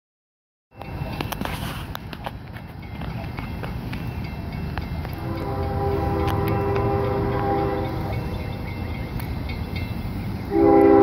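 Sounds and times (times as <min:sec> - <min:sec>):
diesel locomotive rumble: 0:00.7 - 0:11.0
locomotive air horn chord: 0:05.2 - 0:08.3, 0:10.5 - 0:11.0.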